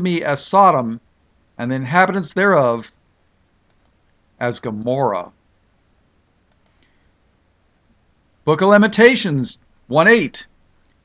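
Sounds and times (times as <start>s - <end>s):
faint clicks: 3.6s - 4.2s, 6.4s - 7.0s.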